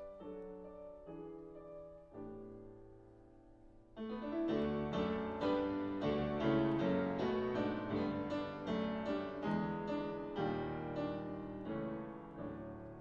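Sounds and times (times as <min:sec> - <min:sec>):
jazz piano chords: 0:00.0 - 0:13.0.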